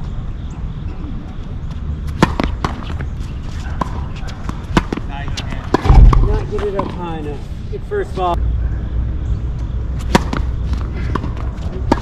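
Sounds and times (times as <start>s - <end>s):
tennis ball bouncing on hard court: 2.1s - 7.0s, 10.0s - 12.0s.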